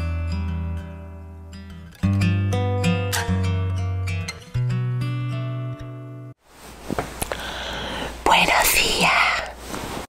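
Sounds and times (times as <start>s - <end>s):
woman whispering: 8.2s - 9.6s.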